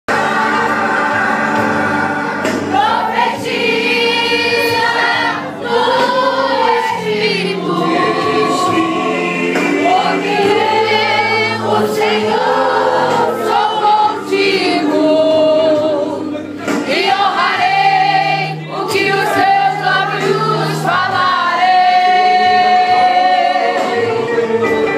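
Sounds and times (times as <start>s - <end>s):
women's choir singing gospel: 0.1s - 24.9s.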